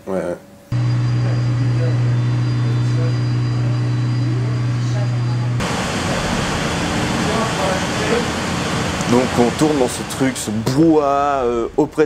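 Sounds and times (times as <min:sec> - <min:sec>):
plant-room machinery humming: 0:00.2 - 0:12.0
rushing machinery noise: 0:00.7 - 0:12.0.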